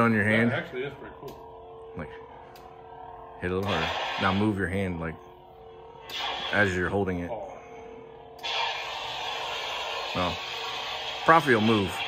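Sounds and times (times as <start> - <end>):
lightsaber faint hum: 0.0 - 12.0
hissing crackle sound effect: 8.4 - 12.0.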